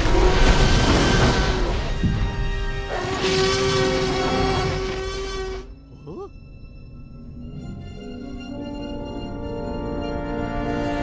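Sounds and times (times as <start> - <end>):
dinosaur roar: 2.9 - 6.3.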